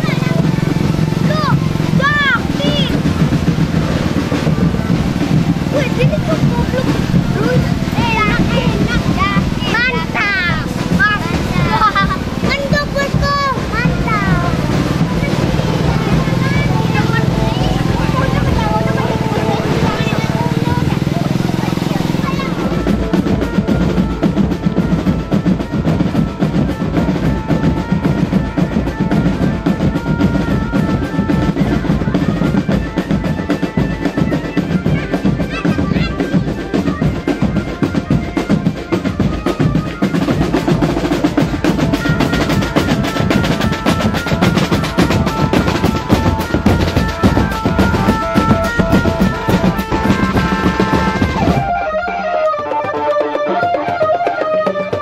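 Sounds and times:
bass drum beats: 0.0s - 55.0s
marching drum band playing: 0.0s - 55.0s
snare drum rolls: 0.0s - 55.0s.

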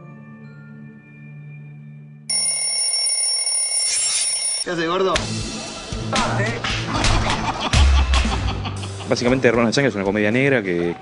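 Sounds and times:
alarm clock bell ringing: 2.3s - 4.8s.

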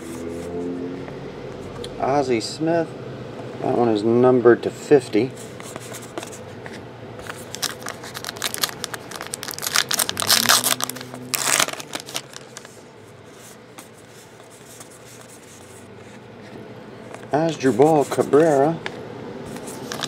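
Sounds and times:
cards rustling: 5.6s - 18.9s, 19.5s - 20.0s
foil wrapper crinkling and tearing: 7.3s - 12.8s, 19.8s - 20.0s.

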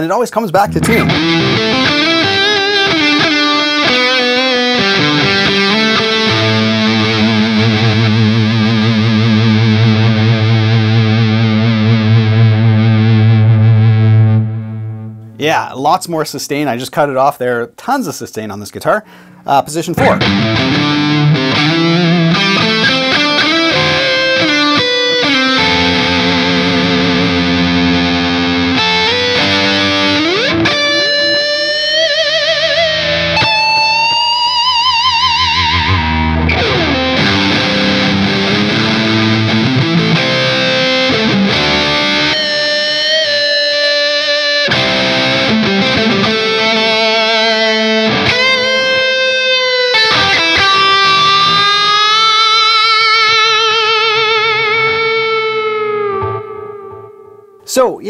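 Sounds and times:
distorted electric guitar lead: 0.6s - 15.4s, 19.9s - 57.7s.

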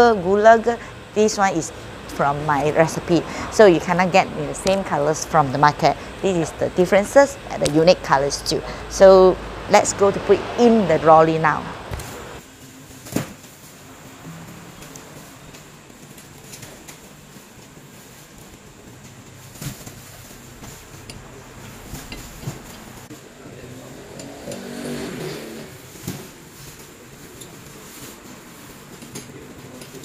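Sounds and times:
low steady background noise: 0.0s - 24.6s.

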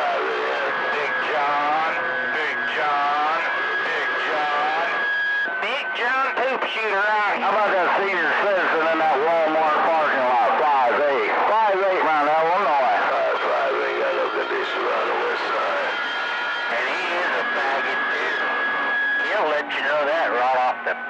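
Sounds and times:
garbled radio voices: 0.0s - 21.0s
radio static: 0.0s - 21.0s.

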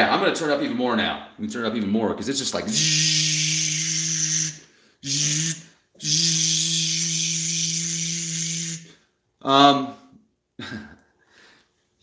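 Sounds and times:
man straining with hissing voice: 2.7s - 9.0s.

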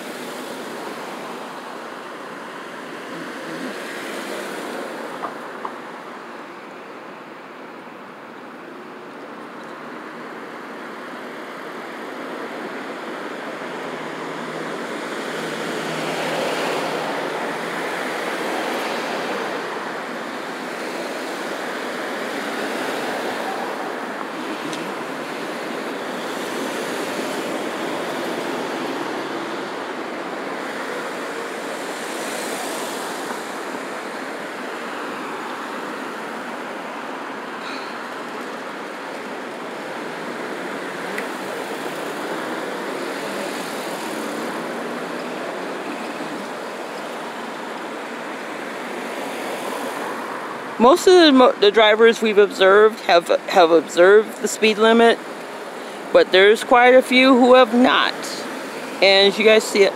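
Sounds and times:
vehicles passing: 0.0s - 59.9s.

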